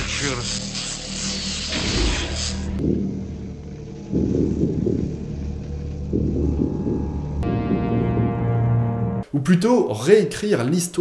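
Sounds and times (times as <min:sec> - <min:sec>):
deep rumble: 0:02.7 - 0:09.2.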